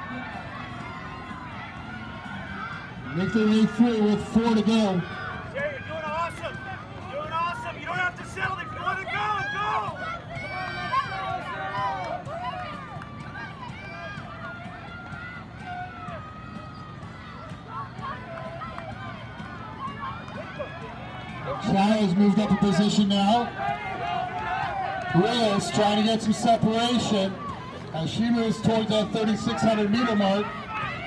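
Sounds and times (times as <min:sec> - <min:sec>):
spectators shouting encouragement: 0:00.0 - 0:31.0.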